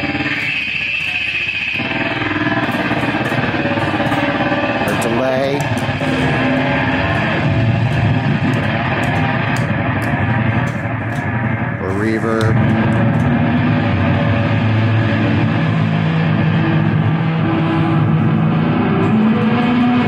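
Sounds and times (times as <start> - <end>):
oscillating squeals: 0.0 - 11.8
distorted guitar drone: 0.0 - 20.0.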